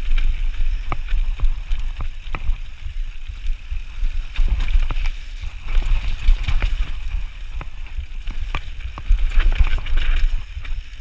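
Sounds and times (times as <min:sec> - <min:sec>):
bike rattling: 0:00.0 - 0:11.0
wind rumble on microphone: 0:00.0 - 0:11.0.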